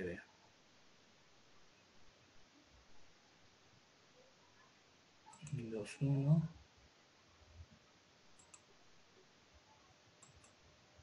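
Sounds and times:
computer mouse clicks: 0:05.3 - 0:05.6, 0:08.4 - 0:08.7, 0:10.2 - 0:10.6.

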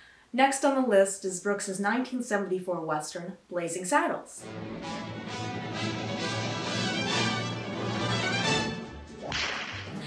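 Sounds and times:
western film theme music: 0:04.4 - 0:09.9
whip crack: 0:09.2 - 0:10.0.

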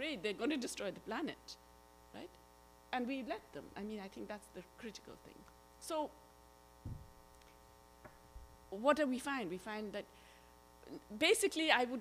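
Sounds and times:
electrical mains hum: 0:00.0 - 0:12.0
soft low thump: 0:06.8 - 0:07.2.

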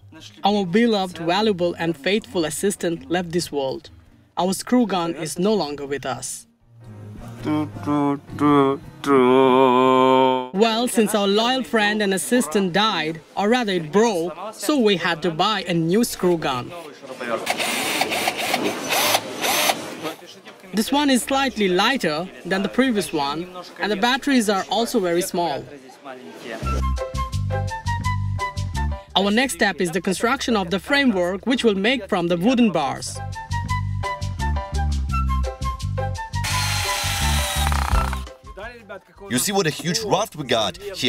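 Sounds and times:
cordless drill motor whirring: 0:17.5 - 0:19.8, 0:36.4 - 0:38.3
woodworking tool hissing: 0:36.4 - 0:38.3.

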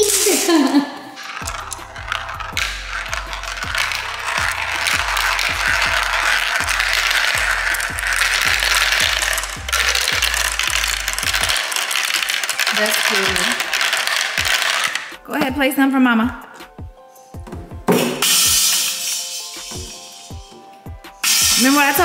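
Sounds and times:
marbles rattling down plastic run: 0:00.0 - 0:00.5, 0:01.2 - 0:15.2, 0:21.2 - 0:22.0
background music with bass line: 0:01.4 - 0:11.6.

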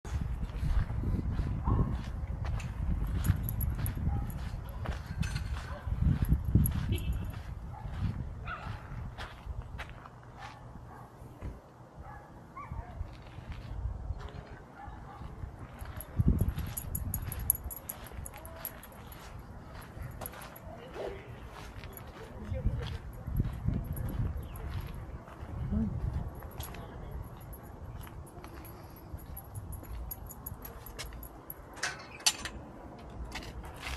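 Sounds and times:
wind rumbling on microphone: 0:00.0 - 0:10.0, 0:12.7 - 0:14.6, 0:15.2 - 0:20.2, 0:21.8 - 0:30.8
footsteps on dirt path: 0:00.1 - 0:10.6, 0:13.0 - 0:14.6, 0:15.6 - 0:31.3.

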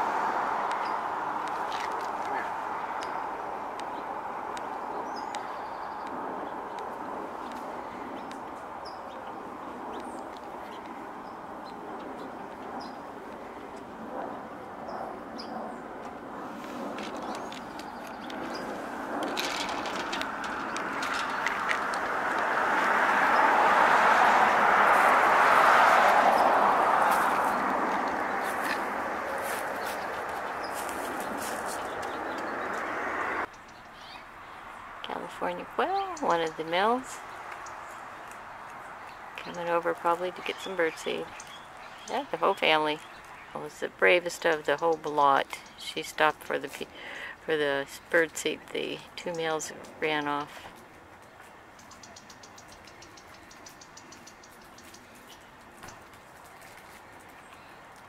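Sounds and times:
distant traffic noise: 0:00.0 - 0:58.0.

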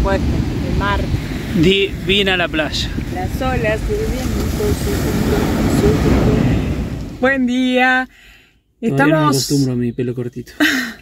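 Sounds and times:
wind rumble on microphone: 0:00.0 - 0:07.2
surf breaking on sand: 0:00.0 - 0:07.4
faint voice: 0:08.8 - 0:09.8.

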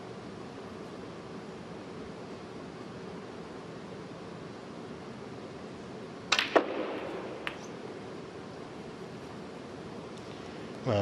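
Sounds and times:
cue striking ball: 0:06.3 - 0:07.8.

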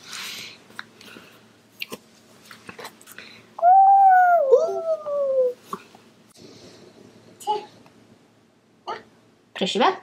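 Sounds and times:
second wavering cry: 0:03.6 - 0:05.6.

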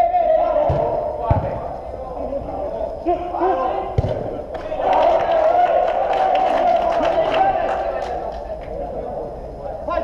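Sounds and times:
players calling out: 0:00.0 - 0:10.0
football being kicked: 0:00.6 - 0:01.6, 0:04.0 - 0:04.3.

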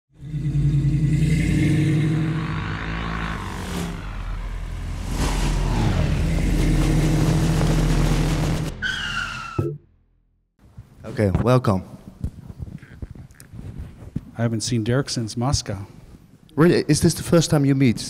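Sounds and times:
loud low drone: 0:00.1 - 0:08.8
falling tone: 0:00.2 - 0:10.0
whooshing sweeps: 0:03.2 - 0:08.8.

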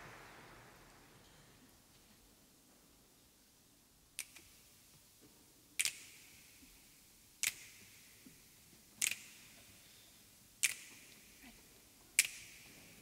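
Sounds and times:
finger snaps in reverberant room: 0:04.2 - 0:04.7, 0:05.8 - 0:09.8, 0:10.6 - 0:11.4, 0:12.2 - 0:13.0.

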